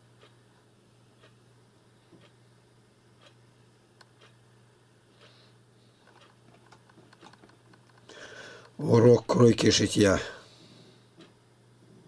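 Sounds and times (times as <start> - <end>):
low steady hum: 0.0 - 12.0
man speaking: 8.8 - 10.4.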